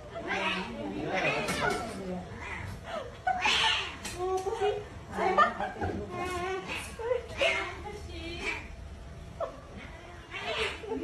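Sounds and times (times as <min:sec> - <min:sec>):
people talking and chuckling: 0:00.0 - 0:08.1, 0:10.5 - 0:11.0.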